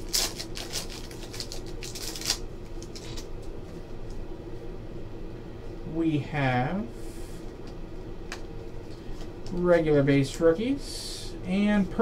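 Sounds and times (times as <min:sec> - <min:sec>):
foil wrapper crinkling: 0:00.0 - 0:03.5.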